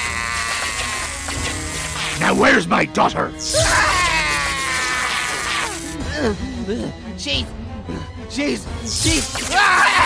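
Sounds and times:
electric buzz: 0.0s - 2.2s, 4.7s - 6.0s.

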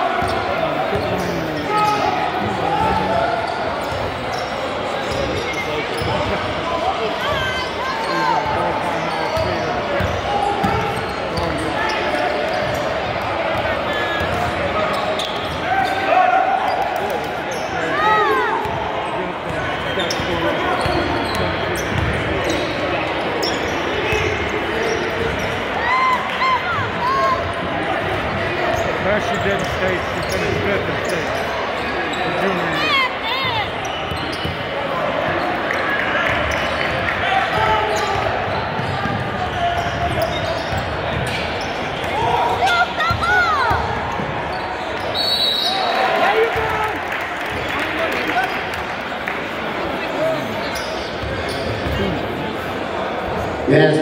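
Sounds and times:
sneakers squeaking: 0.0s - 46.8s, 50.0s - 53.7s
chatter of people: 0.0s - 54.0s.

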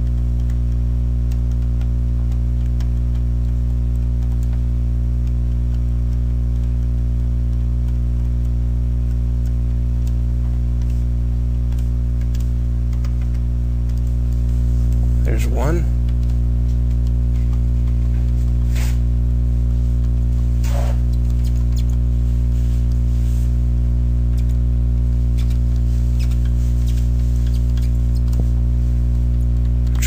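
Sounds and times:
light tick: 0.0s - 4.6s, 5.2s - 18.7s
steady low hum: 0.0s - 30.0s
pen squeaking on tablet: 25.3s - 28.4s.

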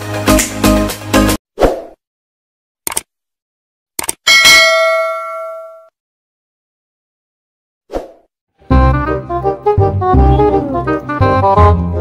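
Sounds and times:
music: 0.0s - 1.4s, 8.6s - 12.0s
bright bell ding: 4.3s - 5.9s.

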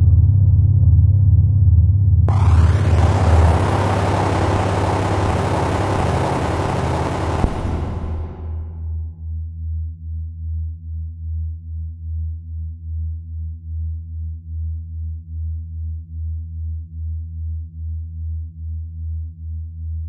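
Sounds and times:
pulsing synthesized drone: 2.3s - 8.8s.

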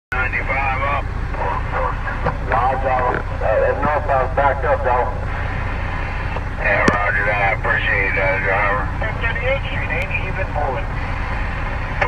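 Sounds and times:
man talking over radio speaker: 0.1s - 5.7s, 6.4s - 11.2s
steady low hum: 0.1s - 12.0s.

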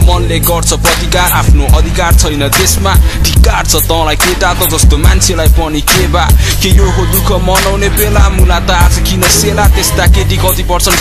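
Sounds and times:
heavy bass: 0.0s - 11.0s
rapping over a beat: 0.0s - 11.0s.

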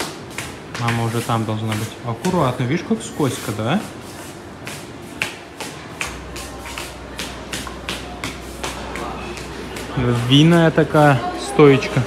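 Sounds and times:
slipper footsteps on hard floor: 3.5s - 10.7s.

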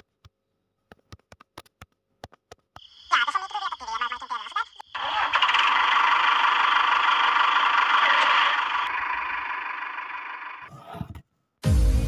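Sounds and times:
small electric motor whirring: 5.0s - 10.7s.

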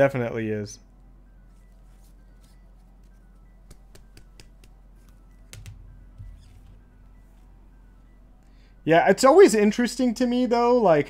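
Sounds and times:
faint background music: 0.0s - 11.0s
trading cards clicking and tapping: 3.0s - 6.8s.

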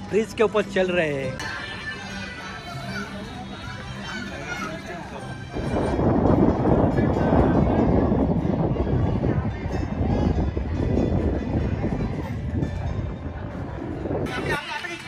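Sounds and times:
wind buffeting microphone: 4.5s - 15.0s.

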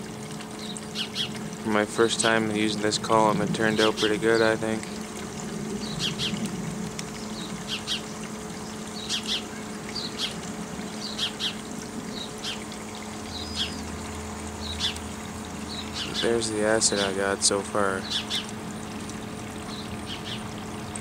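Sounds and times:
steady low hum: 0.0s - 21.0s
small birds chirping: 0.6s - 1.4s, 5.7s - 6.4s, 7.1s - 12.7s, 13.3s - 13.9s, 14.6s - 17.2s, 17.9s - 18.6s, 19.7s - 20.4s.

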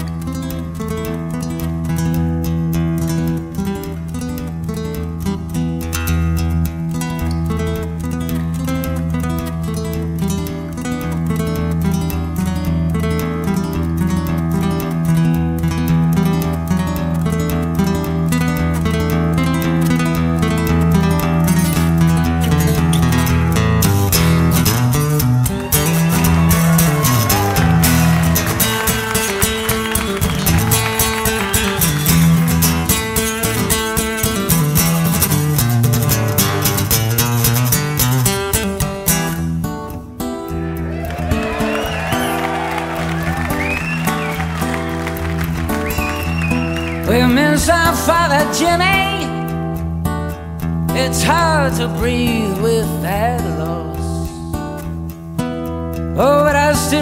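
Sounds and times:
sustained bass notes: 0.0s - 41.8s
acoustic guitar picked rapidly: 0.0s - 57.0s.

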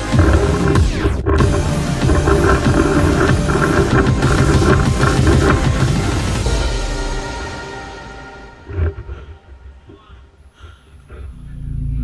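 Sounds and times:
loud dense background music: 0.0s - 10.0s.

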